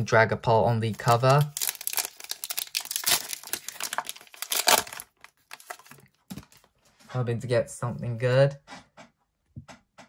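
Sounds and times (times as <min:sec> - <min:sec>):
foil wrapper crinkling: 0:00.9 - 0:06.7.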